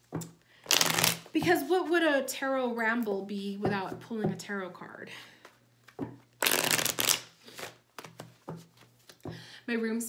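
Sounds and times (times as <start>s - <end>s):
cards being shuffled: 0.6s - 1.3s, 5.8s - 9.2s.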